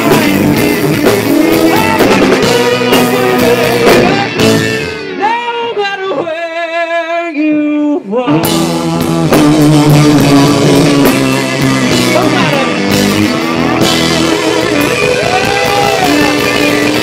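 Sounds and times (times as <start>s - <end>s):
blues-rock band playing: 0.0s - 6.2s, 8.3s - 17.0s.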